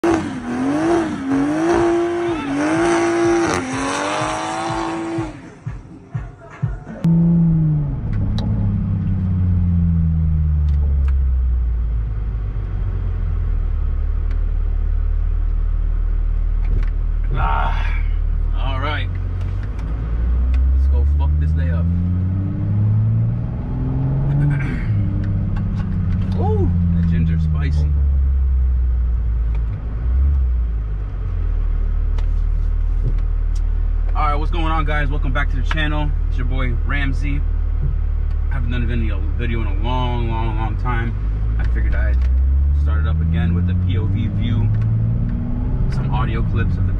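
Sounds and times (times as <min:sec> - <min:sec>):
car engine from inside cabin: 0:00.0 - 0:05.6, 0:07.0 - 0:46.9
intro music: 0:01.9 - 0:10.8.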